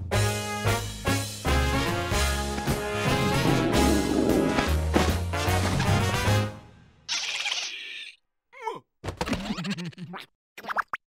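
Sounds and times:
creaky cartoon groan: 3.2 - 4.8.

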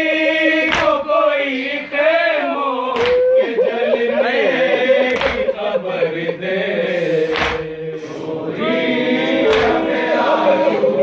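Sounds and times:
men chanting in unison: 0.0 - 11.0.

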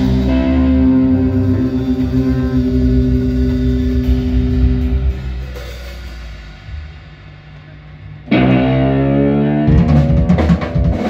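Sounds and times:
jazz-blues band playing: 0.0 - 11.0.

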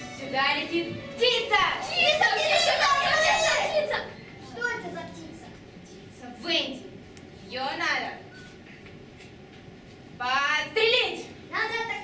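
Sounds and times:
children shouting and talking: 0.0 - 6.9, 10.9 - 12.0.

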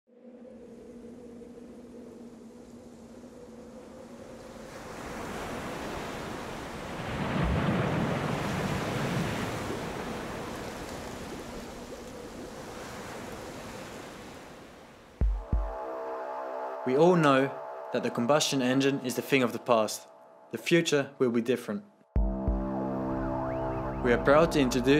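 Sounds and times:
rushing churning water: 3.6 - 15.1.

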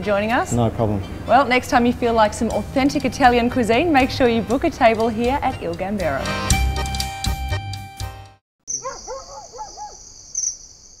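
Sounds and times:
crickets chirring: 8.7 - 11.0.

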